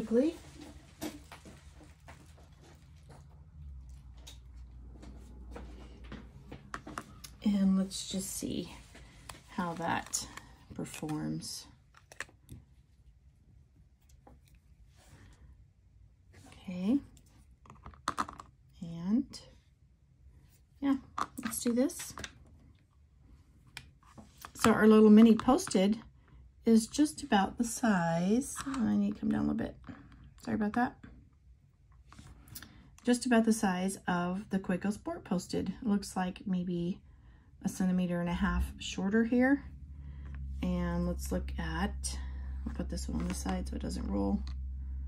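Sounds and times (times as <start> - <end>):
low steady hum: 0.0 - 45.0
handling noises with small clicks: 0.9 - 5.3, 8.8 - 13.2, 13.8 - 15.4.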